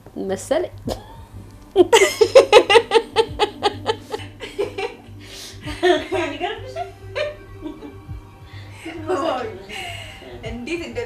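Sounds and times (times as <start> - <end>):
woman laughing: 1.8 - 8.0.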